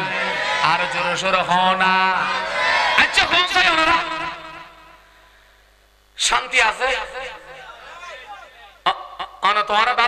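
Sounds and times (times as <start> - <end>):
man shouting through loudspeakers: 0.0 - 4.6, 6.2 - 10.0
electrical hum and whine: 0.0 - 10.0.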